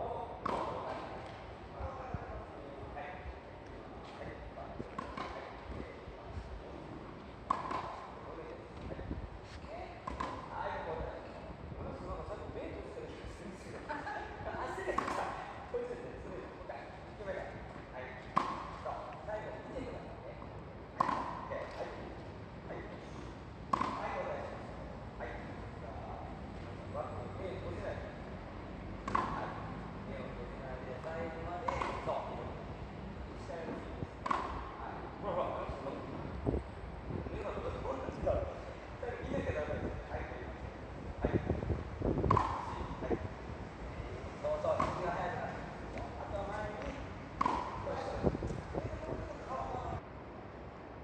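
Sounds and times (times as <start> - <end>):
tennis balls struck with rackets: 0.4 - 1.4, 4.8 - 5.8, 7.0 - 10.6, 14.9 - 15.4, 18.2 - 19.3, 20.9 - 22.2, 23.0 - 24.8, 29.0 - 29.7, 31.0 - 32.5, 33.6 - 34.8, 42.2 - 43.8, 44.4 - 49.1
tennis racket hitting ball: 7.4 - 8.1, 10.0 - 10.5, 15.0 - 15.4, 18.3 - 18.9, 21.0 - 21.8, 23.7 - 24.0, 29.0 - 29.4, 31.7 - 32.1, 34.2 - 34.7, 42.3 - 42.9, 44.7 - 45.1, 46.8 - 48.0
people talking: 7.8 - 22.1, 29.1 - 32.6, 43.9 - 50.0.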